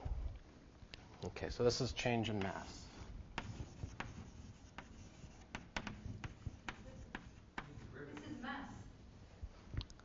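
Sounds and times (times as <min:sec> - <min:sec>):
chalk tapping on board: 0:02.3 - 0:02.7, 0:03.4 - 0:08.4
chalk scratching on blackboard: 0:02.3 - 0:08.9.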